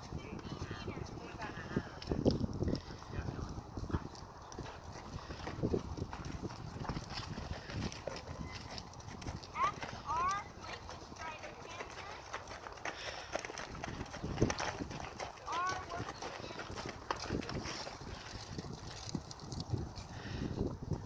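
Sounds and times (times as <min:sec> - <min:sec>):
horse hoofbeats on sand: 0:00.0 - 0:21.0.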